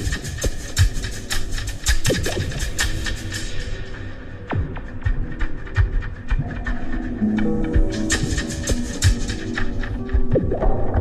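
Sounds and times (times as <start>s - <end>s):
dub electronic music: 0.0s - 11.0s.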